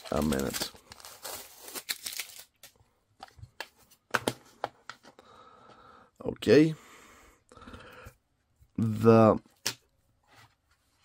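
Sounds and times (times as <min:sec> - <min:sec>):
paper wrapping tearing: 0:00.0 - 0:02.7.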